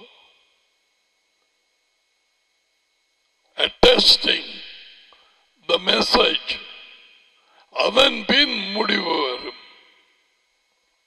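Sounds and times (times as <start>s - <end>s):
man's voice in loud bursts: 3.6s - 4.7s, 5.7s - 7.0s, 7.8s - 9.7s.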